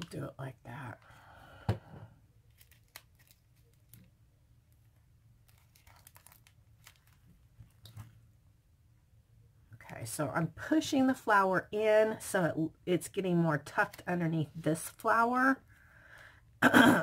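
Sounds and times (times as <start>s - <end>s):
paper rustling: 2.5s - 4.1s, 5.4s - 8.2s.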